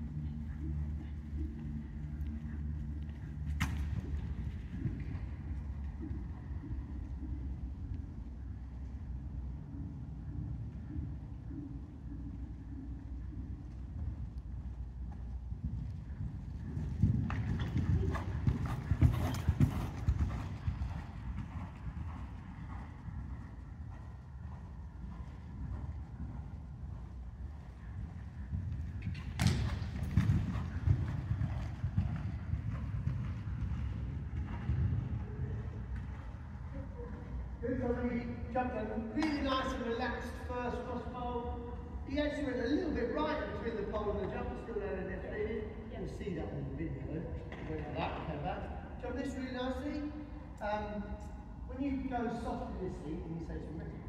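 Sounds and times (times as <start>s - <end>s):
steady low rumble: 0.0s - 39.0s
horse hoofbeats on sand: 13.2s - 36.6s.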